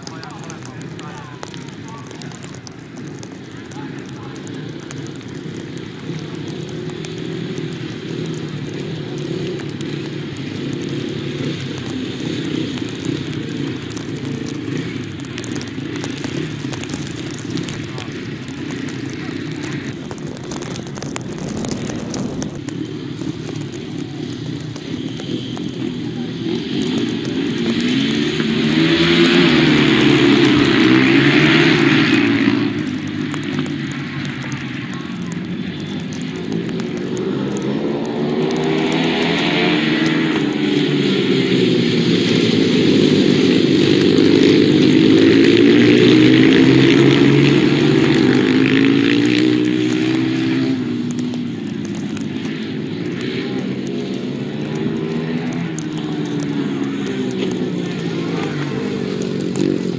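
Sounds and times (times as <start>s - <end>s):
racing motorcycles revving: 0.0s - 59.9s.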